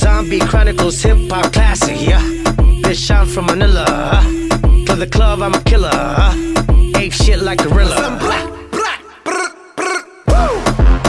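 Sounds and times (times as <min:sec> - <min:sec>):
song with beat: 0:00.0 - 0:11.0.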